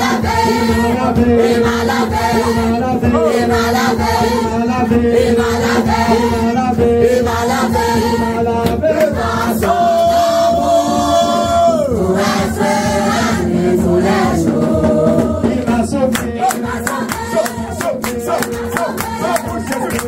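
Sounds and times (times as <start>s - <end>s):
group singing in unison: 0.0s - 20.0s.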